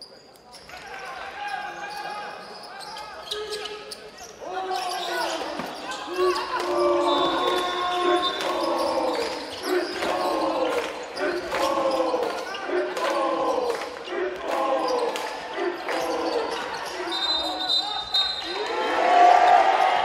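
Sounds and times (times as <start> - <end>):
voices chanting in rhythm: 6.2 - 18.0.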